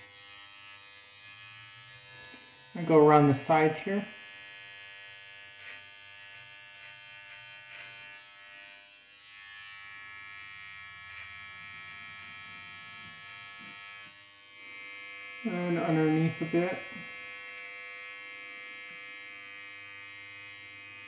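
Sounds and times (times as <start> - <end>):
electric trimmer buzzing: 0.0 - 21.0.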